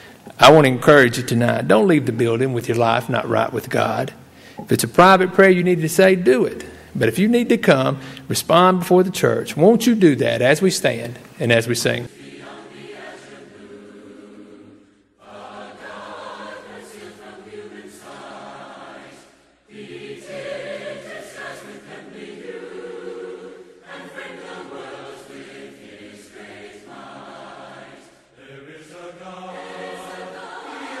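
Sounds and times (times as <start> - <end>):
congregation singing a hymn: 0.0 - 31.0.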